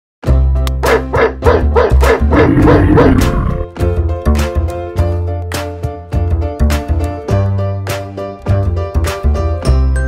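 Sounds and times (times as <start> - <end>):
background music: 0.2 - 10.0.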